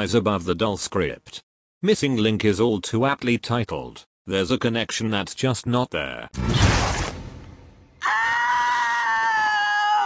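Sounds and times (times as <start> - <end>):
long high-pitched scream: 8.0 - 10.0.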